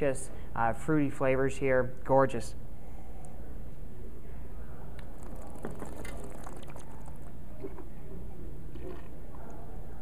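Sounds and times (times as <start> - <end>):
wine sipped and slurped: 5.0 - 7.9, 8.7 - 9.6
spitting into metal bucket: 5.0 - 8.0, 8.7 - 9.3.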